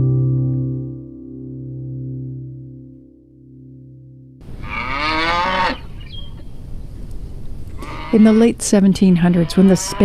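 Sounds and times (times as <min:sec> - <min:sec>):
acoustic guitar note: 0:00.0 - 0:04.5
outdoor background noise: 0:04.4 - 0:10.0
cow mooing: 0:04.6 - 0:05.9, 0:07.8 - 0:08.5, 0:09.2 - 0:10.0.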